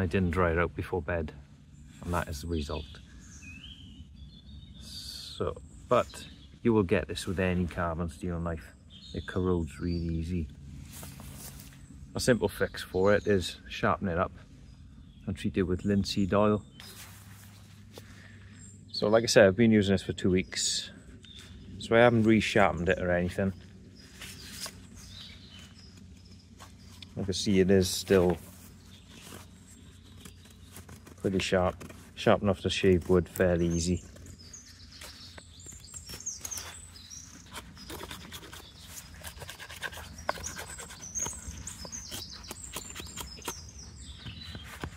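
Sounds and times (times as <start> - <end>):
faint rising bird chirp: 8.2 - 32.8
knife shaving wooden stick: 36.0 - 43.8.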